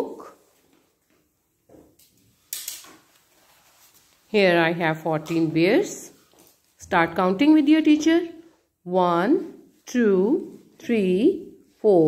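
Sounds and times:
short rustle: 2.4s - 4.4s.

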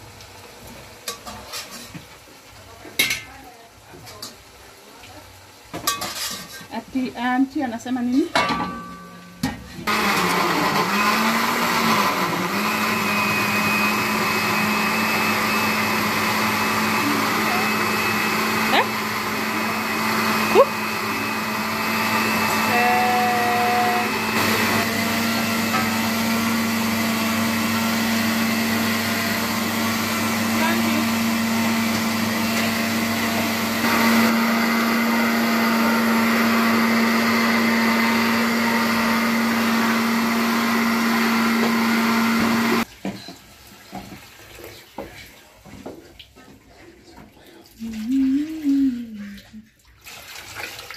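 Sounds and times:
blender motor running: 9.8s - 42.9s.

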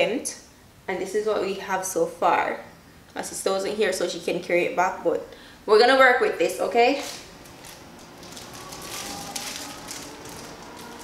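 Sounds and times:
faint rustling and crackling: 7.0s - 11.0s.

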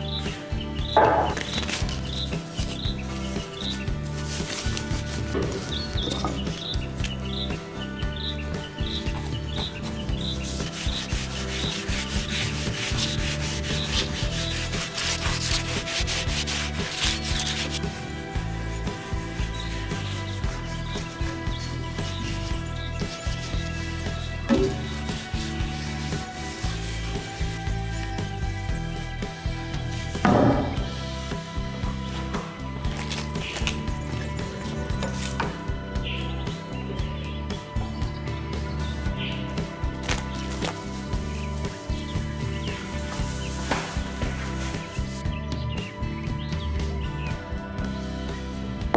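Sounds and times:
soft background music: 0.0s - 48.9s
cloth rubbing wood: 0.9s - 7.3s, 8.4s - 30.8s, 39.9s - 45.2s.

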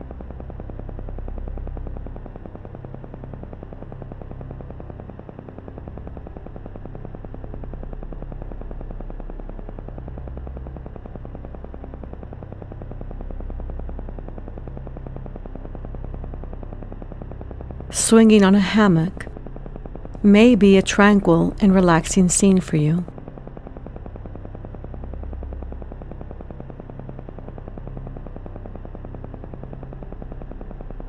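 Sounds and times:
low hum: 17.9s - 28.6s.

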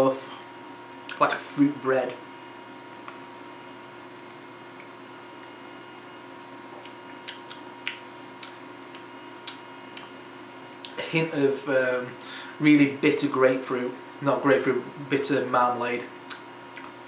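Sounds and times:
quiet room hum: 0.0s - 17.0s
lips and tongue smacking: 6.7s - 10.2s, 16.3s - 17.0s.

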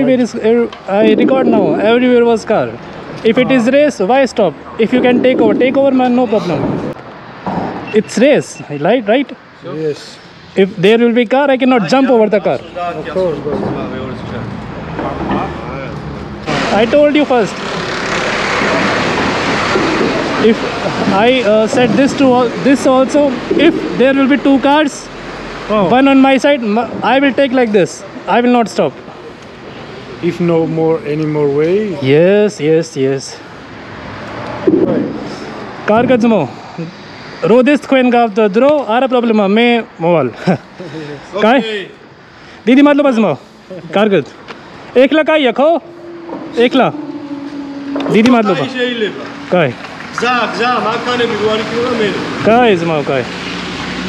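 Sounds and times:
man speaking: 0.0s - 7.0s, 20.4s - 25.1s, 35.2s - 39.9s, 44.9s - 47.3s, 48.0s - 53.3s
truck rolling past: 17.6s - 25.7s, 45.0s - 54.0s.

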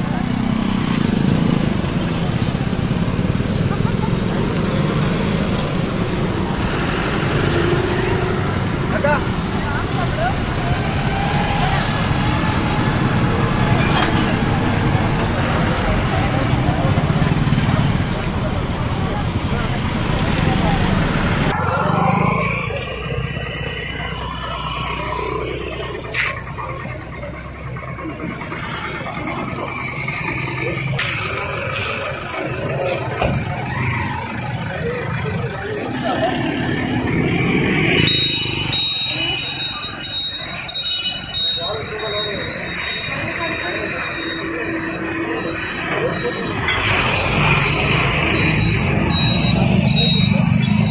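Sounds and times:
idling motorbike and car engines: 0.0s - 50.9s
people talking: 0.0s - 50.9s.

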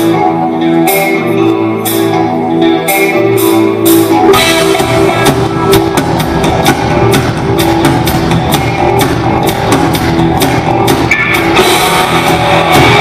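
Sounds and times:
live rock band playing: 0.0s - 13.0s
drum kit beat: 2.9s - 13.0s.

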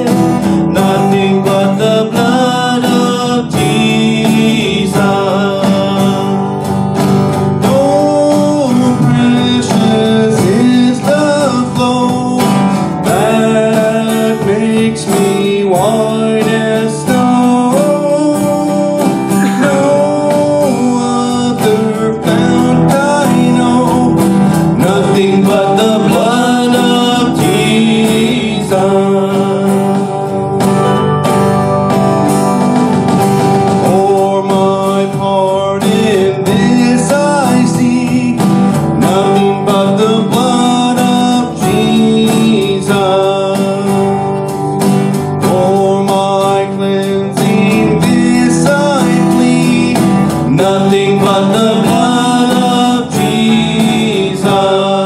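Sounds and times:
acoustic guitar strumming: 0.0s - 55.0s
man singing into a microphone: 0.0s - 55.0s.

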